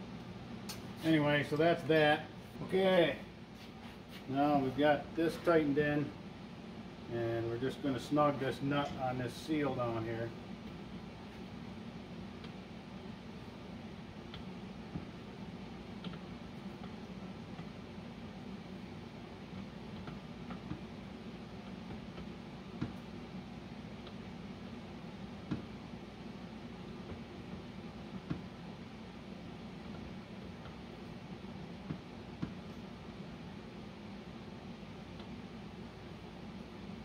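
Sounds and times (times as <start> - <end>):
low room hum: 0.0 - 37.0.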